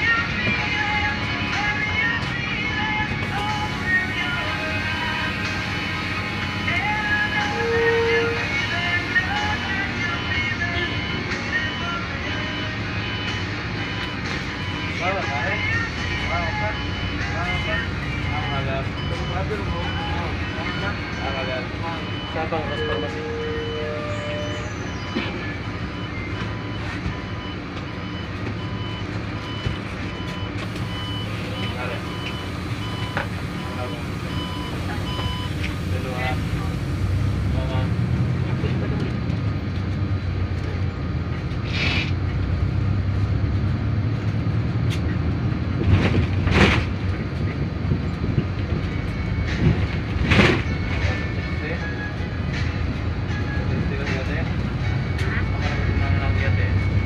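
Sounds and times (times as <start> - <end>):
bus engine running: 0.0 - 57.0.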